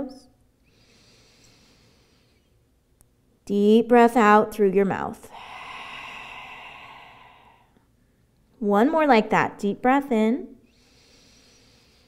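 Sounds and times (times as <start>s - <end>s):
woman breathing out: 5.2s - 7.9s.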